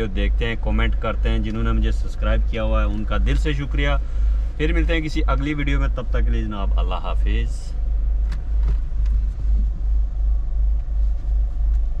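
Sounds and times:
engine and road noise: 0.0 - 12.0.

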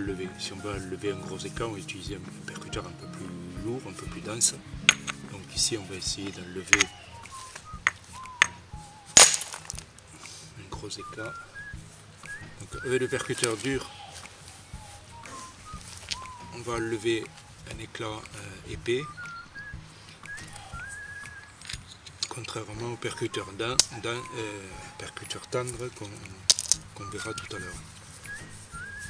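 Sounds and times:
bird whistling: 3.8 - 29.0
stone striking flint: 4.8 - 5.2, 6.7 - 8.6, 9.2 - 9.9, 26.5 - 26.8.

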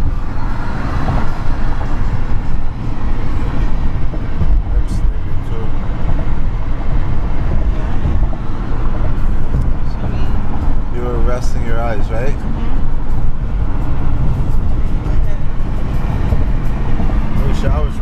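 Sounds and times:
car interior road rumble: 0.0 - 18.0.

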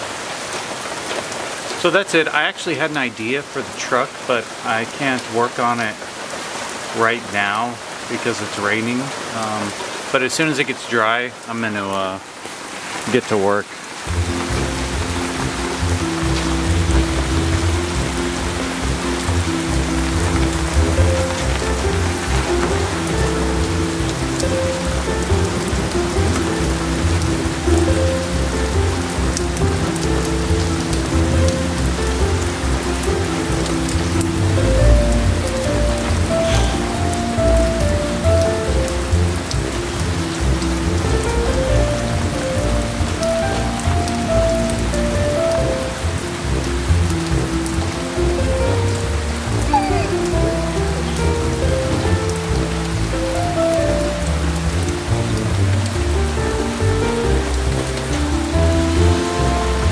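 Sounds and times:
rain on concrete and gravel: 0.0 - 59.9
slow melody of held notes: 14.1 - 59.9.

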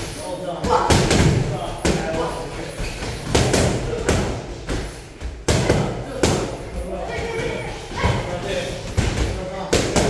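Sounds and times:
voices in background: 0.0 - 10.0.

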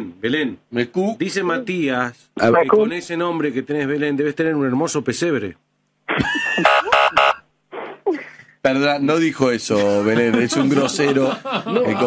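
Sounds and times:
buzzer blasts: 6.6 - 7.4.

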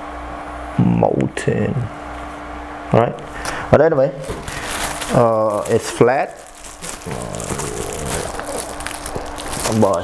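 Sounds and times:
plastic wrap crinkling: 4.2 - 10.0.

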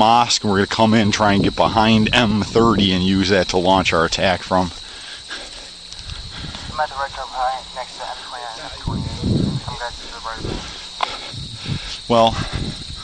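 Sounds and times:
cricket trill: 0.0 - 13.0
low thumps: 8.3 - 13.0.

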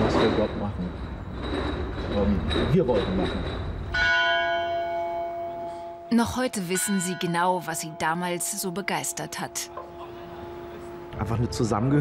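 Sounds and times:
bell ringing: 4.0 - 11.3.

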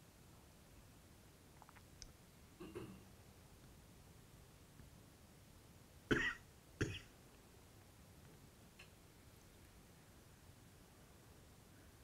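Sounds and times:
person coughing: 6.1 - 7.1.

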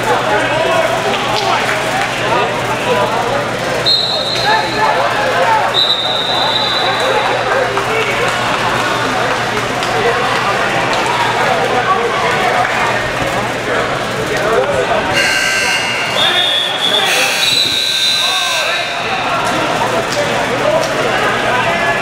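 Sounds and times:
chatter of many voices: 0.0 - 22.0
electronic match buzzer: 15.2 - 18.4.

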